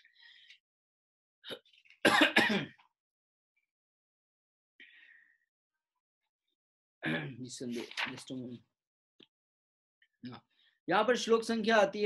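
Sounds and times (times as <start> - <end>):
man clearing his throat: 1.5 - 2.8, 7.0 - 7.4.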